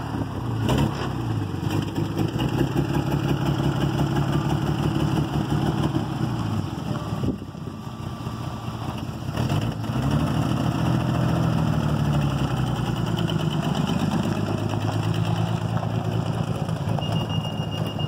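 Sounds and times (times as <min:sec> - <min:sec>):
car engine running at low speed: 0:00.0 - 0:18.0.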